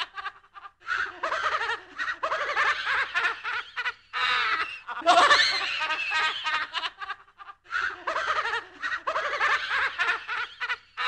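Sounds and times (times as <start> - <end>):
spooky laughing voice: 4.2 - 6.3.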